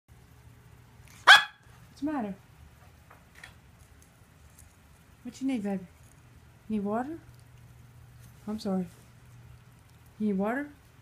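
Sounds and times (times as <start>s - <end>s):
dog barking: 1.2s - 1.7s.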